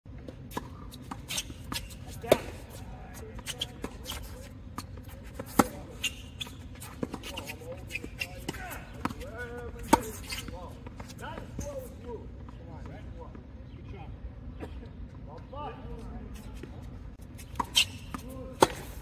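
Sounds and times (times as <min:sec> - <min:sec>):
tennis ball struck by racket: 0:00.5 - 0:02.7, 0:04.9 - 0:06.4, 0:17.5 - 0:19.0.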